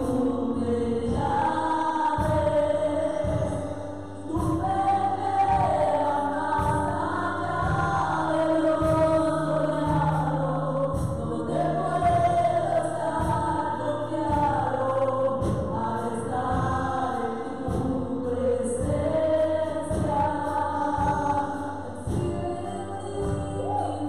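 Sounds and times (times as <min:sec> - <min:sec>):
band with drums and keyboard: 0:00.0 - 0:24.0
women singing together: 0:00.0 - 0:24.0.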